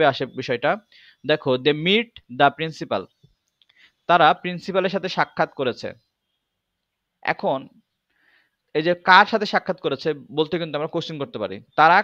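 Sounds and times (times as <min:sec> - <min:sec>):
man speaking: 0:00.0 - 0:03.2, 0:04.1 - 0:06.1, 0:07.2 - 0:07.8, 0:08.7 - 0:12.0
faint clicks: 0:03.2 - 0:03.9.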